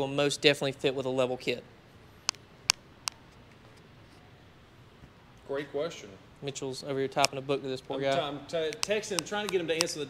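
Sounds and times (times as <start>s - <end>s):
sharp clicks: 8.6s - 10.0s.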